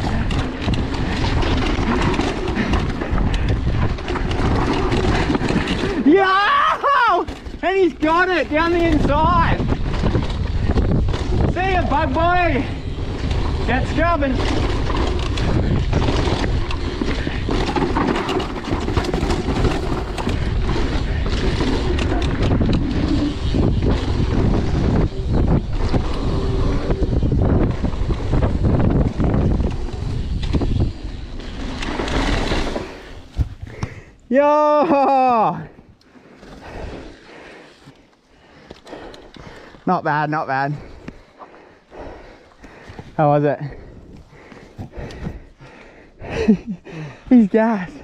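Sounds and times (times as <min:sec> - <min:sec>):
bike knocks and rattles: 0:00.0 - 0:06.1, 0:07.0 - 0:34.1
wind buffeting microphone: 0:00.0 - 0:06.1, 0:08.3 - 0:34.0, 0:40.7 - 0:47.2
tyres rumbling over dirt: 0:00.0 - 0:48.0.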